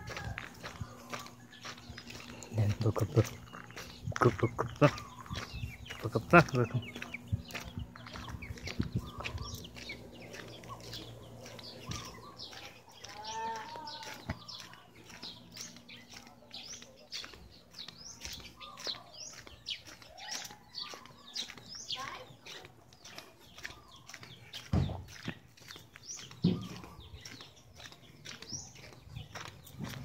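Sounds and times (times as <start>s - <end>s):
small birds chirping: 0.0s - 30.0s
drawn-out animal call: 4.5s - 5.6s, 7.0s - 15.7s.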